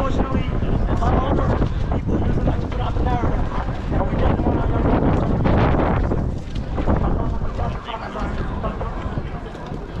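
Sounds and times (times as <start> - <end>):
crowd voices: 0.0 - 10.0
wind buffeting microphone: 0.0 - 10.0.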